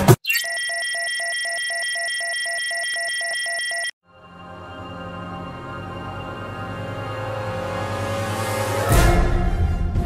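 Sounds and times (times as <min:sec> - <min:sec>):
rapid electronic beeping: 0:00.2 - 0:03.9.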